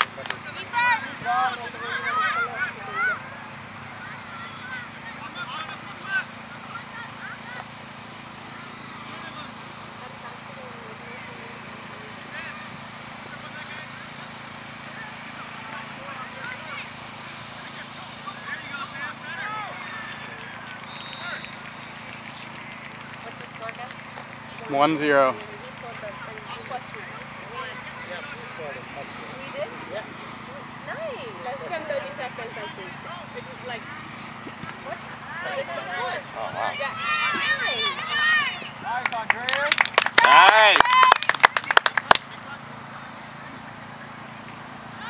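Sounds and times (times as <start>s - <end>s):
distant shouts and calls: 0.0s - 45.0s.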